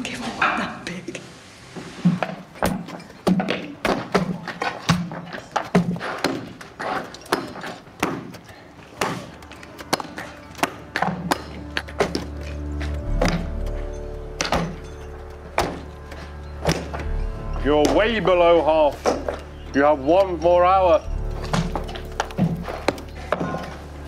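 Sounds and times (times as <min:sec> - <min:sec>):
background music: 0:00.0 - 0:24.0
sledgehammer striking rock: 0:16.6 - 0:17.0.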